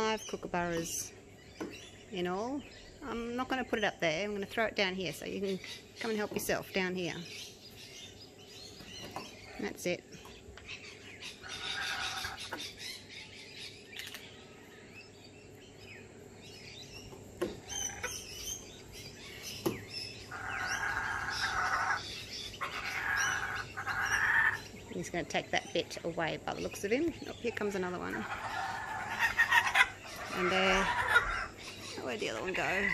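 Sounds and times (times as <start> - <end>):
kookaburras chattering: 0.0 - 32.9.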